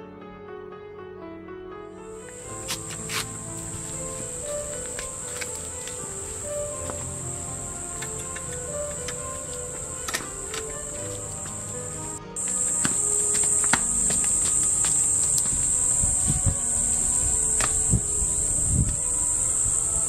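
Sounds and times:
soft background music: 0.0s - 20.0s
high-pitched insect drone: 2.3s - 20.0s.

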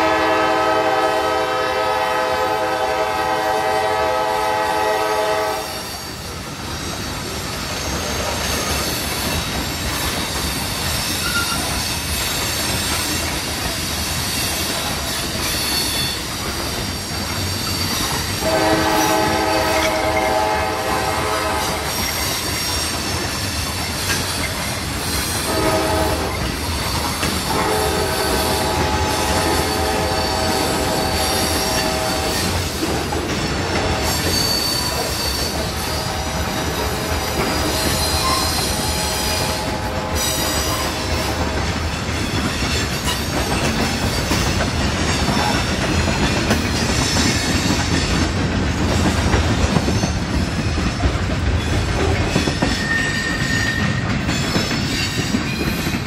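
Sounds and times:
locomotive air horn blasts: 0.0s - 5.8s, 18.4s - 22.0s, 25.5s - 26.4s, 27.4s - 32.7s, 33.7s - 34.4s, 35.7s - 41.8s
freight train wheels on rails: 0.0s - 56.0s
high wheel squeal: 5.4s - 20.4s, 21.7s - 32.9s, 33.9s - 41.5s, 52.2s - 56.0s.

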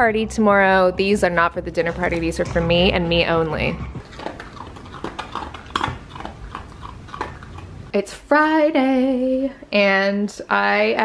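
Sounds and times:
dog crunching dry kibble: 4.0s - 7.9s.

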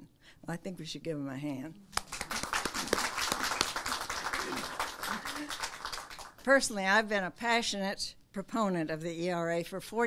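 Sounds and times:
audience applauding: 2.0s - 6.4s.

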